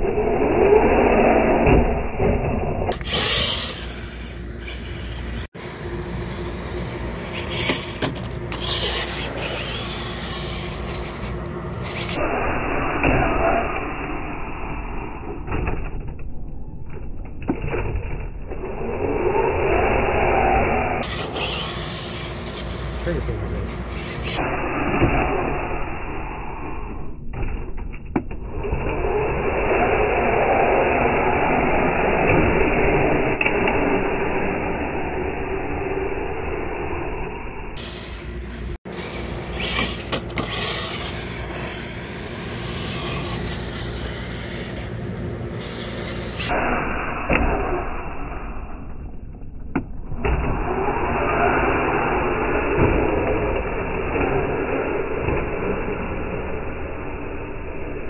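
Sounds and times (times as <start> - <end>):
toy car rolling on concrete: 0.0 - 12.7, 14.3 - 37.0, 37.8 - 46.6
toy truck electric motor running: 2.9 - 12.2, 21.0 - 24.5, 37.8 - 46.5.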